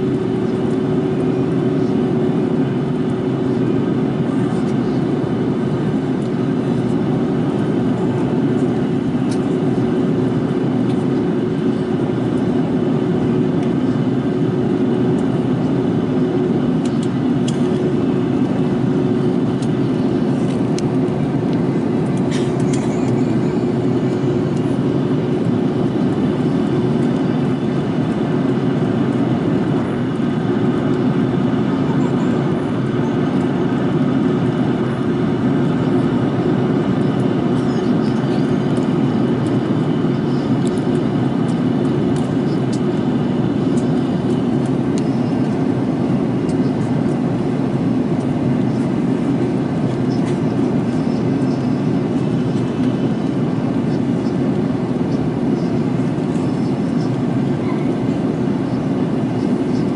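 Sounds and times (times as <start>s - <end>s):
jet airliner cabin rumble: 0.0s - 59.9s.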